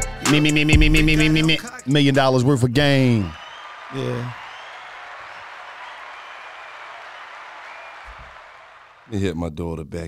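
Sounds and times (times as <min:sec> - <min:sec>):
crowd applauding: 0:02.7 - 0:09.4.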